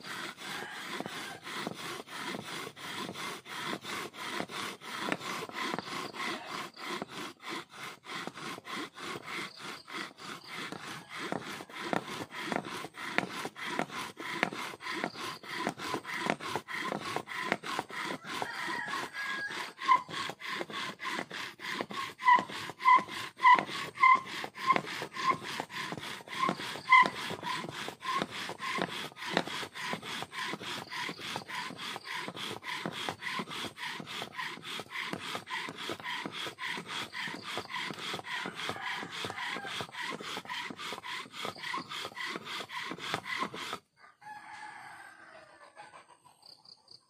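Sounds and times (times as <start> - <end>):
bow drill rasping on wood: 0.0 - 45.0
bow drill squeaks: 0.1 - 43.9.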